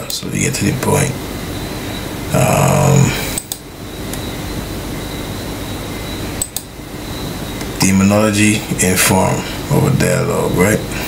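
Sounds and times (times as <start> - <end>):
faint high-pitched whine: 0.0 - 11.0
steady rushing noise: 0.0 - 11.0.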